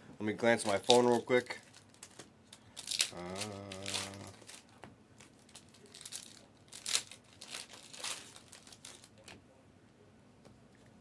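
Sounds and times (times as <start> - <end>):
plastic wrapping crinkling: 0.5 - 9.4.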